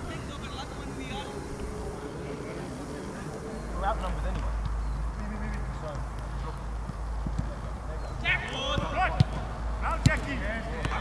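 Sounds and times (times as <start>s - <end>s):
steady low hum: 0.0s - 8.2s
players calling out: 0.0s - 11.0s.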